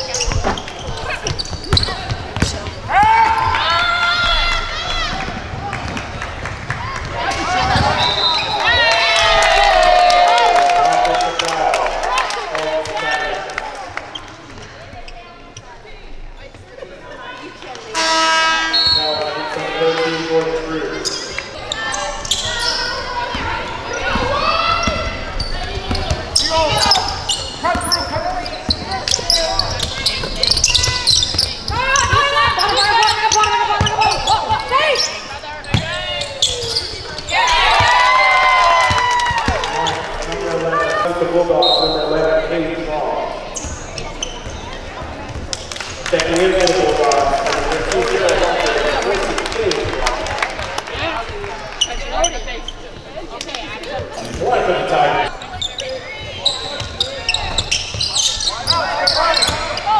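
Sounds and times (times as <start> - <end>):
players calling out: 17.4 - 45.4.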